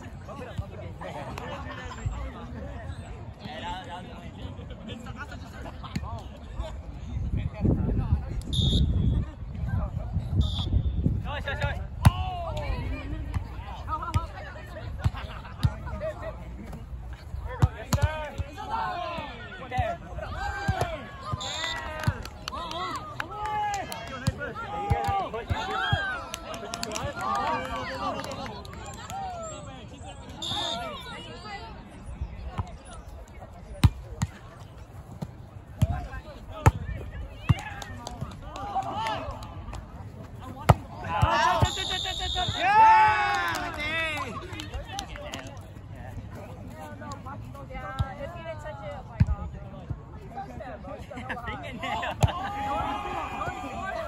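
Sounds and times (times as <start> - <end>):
players talking and calling: 0.0 - 54.0.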